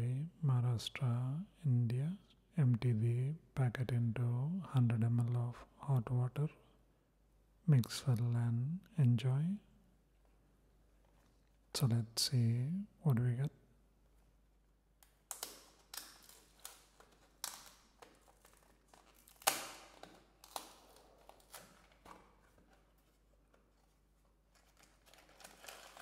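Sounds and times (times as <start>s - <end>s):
foil crinkling: 15.3s - 26.0s.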